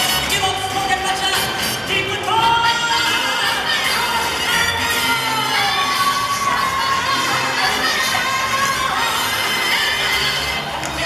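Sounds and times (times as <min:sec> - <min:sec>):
pop dance music: 0:00.0 - 0:11.0.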